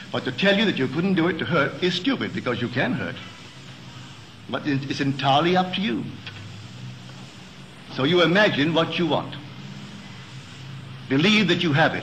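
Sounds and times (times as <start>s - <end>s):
tape hiss and hum: 0.0s - 12.0s.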